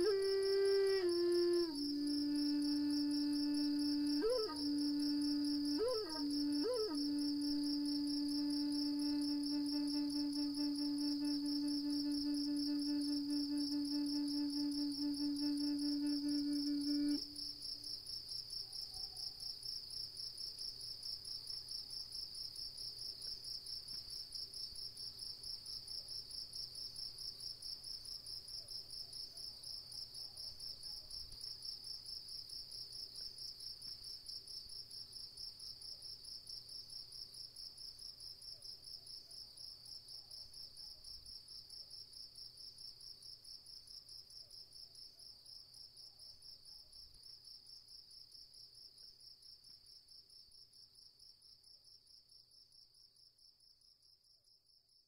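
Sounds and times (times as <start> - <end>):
held musical tone: 0.0 - 17.4
cricket chirping: 0.0 - 55.0.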